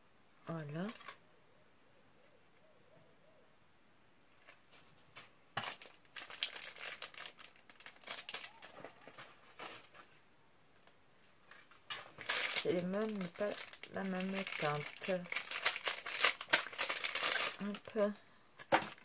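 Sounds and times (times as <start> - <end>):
plastic bag crinkling: 0.8 - 1.2, 5.1 - 10.2, 11.4 - 19.0.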